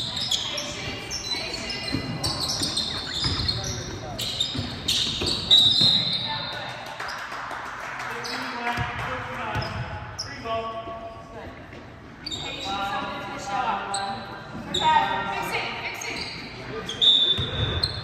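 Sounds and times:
sneaker squeaks: 0.0 - 7.3, 9.5 - 18.0
ball bouncing on hardwood court: 1.5 - 6.6, 8.6 - 10.0, 17.4 - 18.0.

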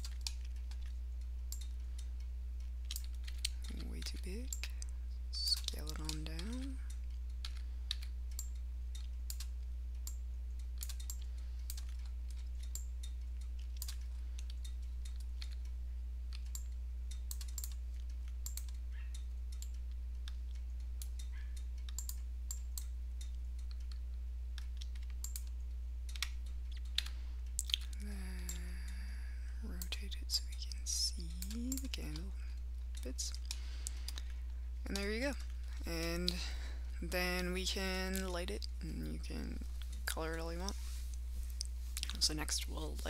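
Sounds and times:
keyboard and mouse clicks: 0.0 - 29.0, 29.7 - 35.6
low electrical hum: 0.0 - 43.0.

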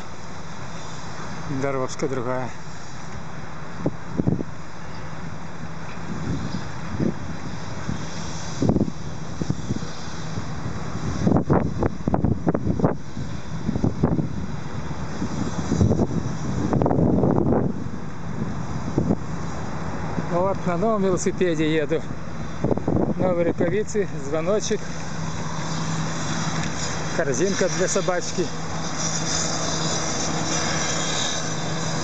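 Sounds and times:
road traffic: 0.0 - 32.0
wind buffeting microphone: 3.2 - 32.0.

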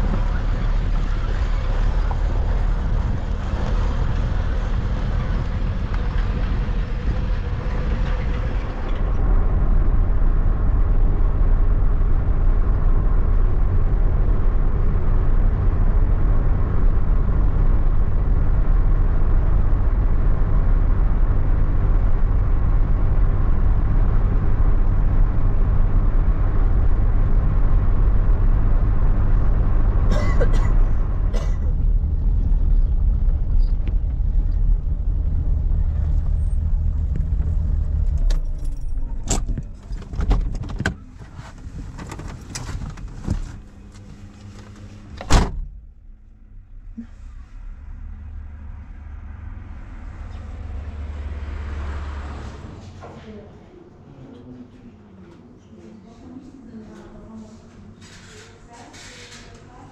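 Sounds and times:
car driving on paved road: 0.0 - 53.6.

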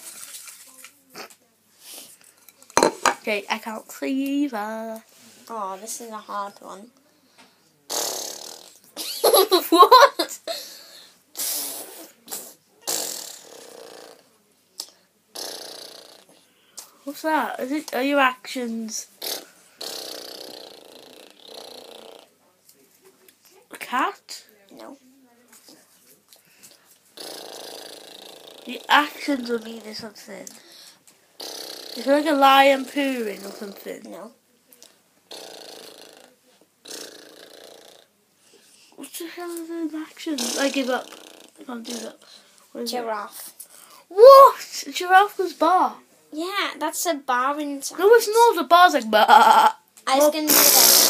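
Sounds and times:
child making hissing noises: 7.9 - 8.7, 11.3 - 14.0, 19.2 - 21.8, 31.4 - 32.3, 40.4 - 42.3, 43.9 - 44.8, 50.2 - 51.0.

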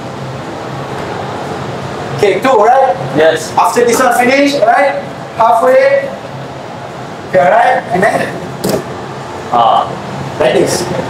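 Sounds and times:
ventilation hum: 0.0 - 11.0.

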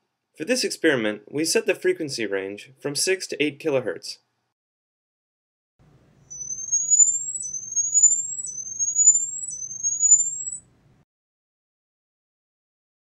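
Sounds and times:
high-pitched rising sweeps: 6.3 - 10.6.

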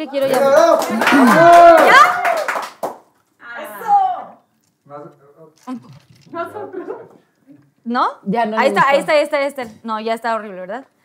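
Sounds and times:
loud exclamation: 0.4 - 2.5.

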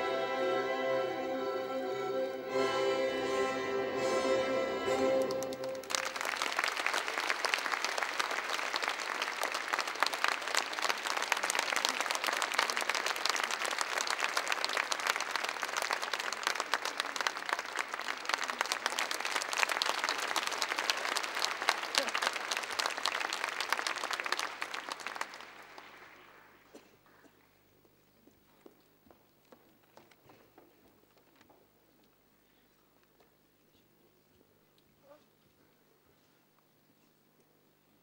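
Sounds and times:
audience applauding: 4.9 - 26.8.

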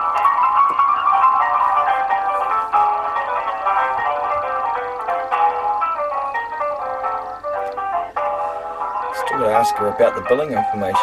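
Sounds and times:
tinny hold music through phone: 0.0 - 11.0.

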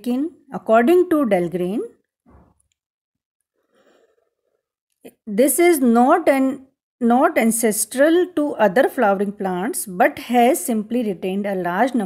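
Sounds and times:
person breathing: 3.6 - 4.6.

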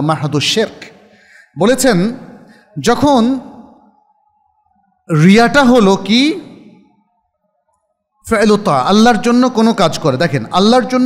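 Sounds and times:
man lecturing: 0.0 - 3.7, 5.1 - 6.7, 8.2 - 11.0.

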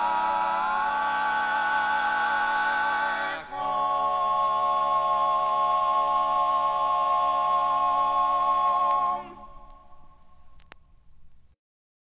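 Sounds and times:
male quartet singing a cappella: 0.0 - 9.5.

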